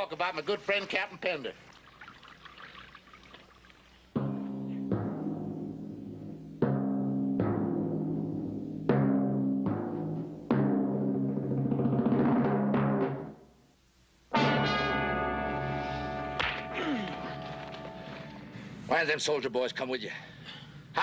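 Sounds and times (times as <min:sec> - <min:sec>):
dramatic orchestral chords: 0:14.3 - 0:18.6.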